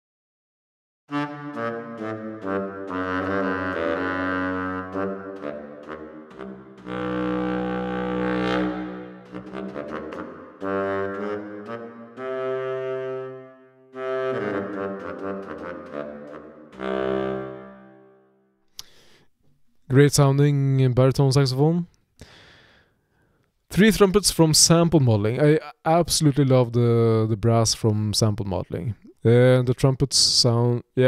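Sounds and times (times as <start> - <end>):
baritone saxophone solo: 1.1 - 18.3.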